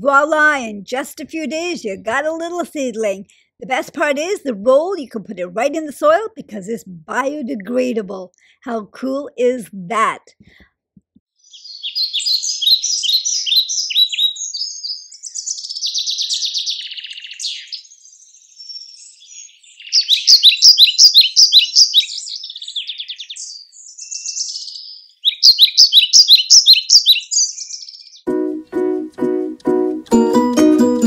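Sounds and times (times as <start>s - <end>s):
buzzy bird trill: 11.4s - 28.2s
songbird singing high notes: 11.4s - 28.2s.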